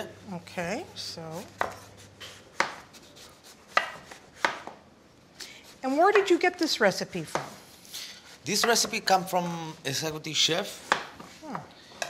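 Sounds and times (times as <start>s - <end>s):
knife slicing on cutting board: 1.6s - 4.7s.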